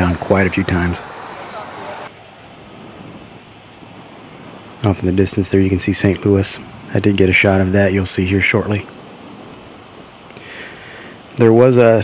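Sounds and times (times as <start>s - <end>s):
insects chirping: 0.0s - 12.0s
soft open-air hiss: 0.0s - 12.0s.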